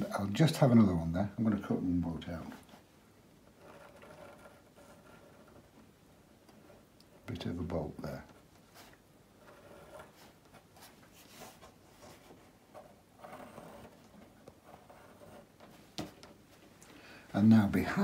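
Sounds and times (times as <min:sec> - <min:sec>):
pencil scratching on paper: 0:03.4 - 0:05.8, 0:08.2 - 0:16.1.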